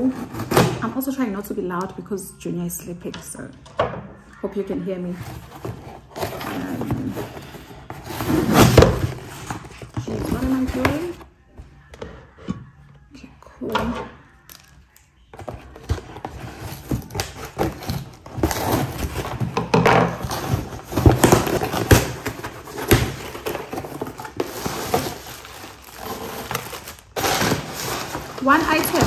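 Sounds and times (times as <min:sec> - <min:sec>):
cardboard box being torn open: 0:20.1 - 0:29.0.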